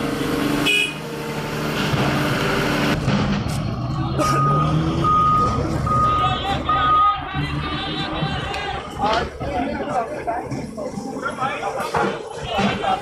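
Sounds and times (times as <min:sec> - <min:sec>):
diesel engine running: 0:00.0 - 0:13.0
reversing alarm beeps: 0:04.4 - 0:07.2.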